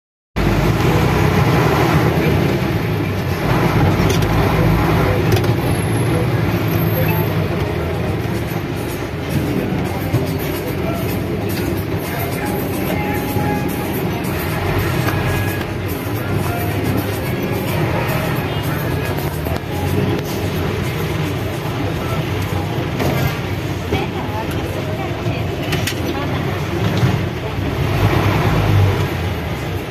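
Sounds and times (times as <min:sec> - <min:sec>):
music playing: 0:00.4 - 0:25.8
engine hum: 0:00.4 - 0:29.9
street and traffic noise: 0:00.4 - 0:29.9.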